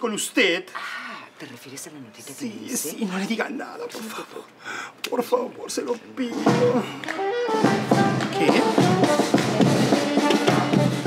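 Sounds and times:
bass drum: 0:06.4 - 0:11.0
snare drum: 0:06.4 - 0:11.0
sustained melody notes: 0:06.4 - 0:11.0.

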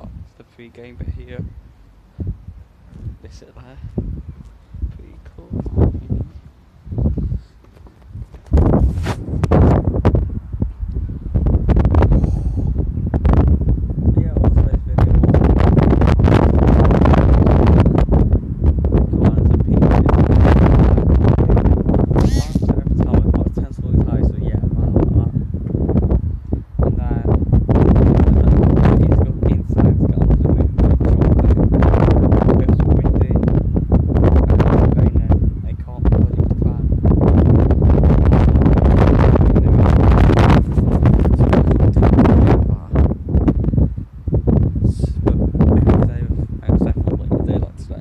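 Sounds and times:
wind buffeting microphone: 0:00.0 - 0:48.0
high honk-like call: 0:22.2 - 0:22.7.

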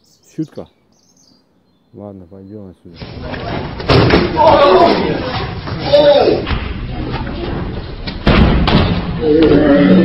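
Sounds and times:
hard impact thud: 0:03.8 - 0:04.5, 0:08.1 - 0:09.2
voices crying out: 0:04.2 - 0:06.5.

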